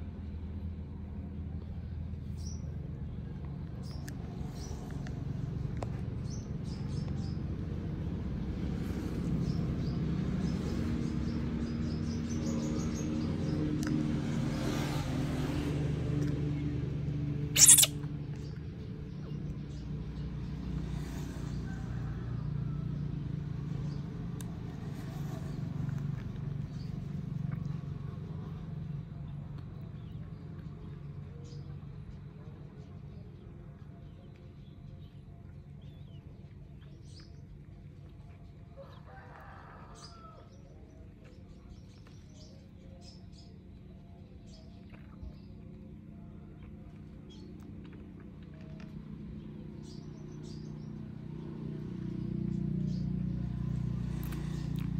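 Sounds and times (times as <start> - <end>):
faint bird chirps: 17.6 - 18.6.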